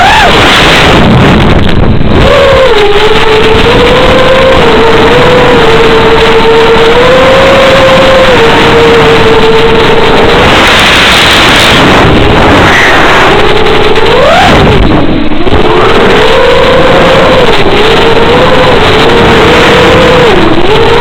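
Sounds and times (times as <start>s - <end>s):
distorted wind rush: 0.0s - 21.0s
electric motor and propeller whining: 0.0s - 21.0s.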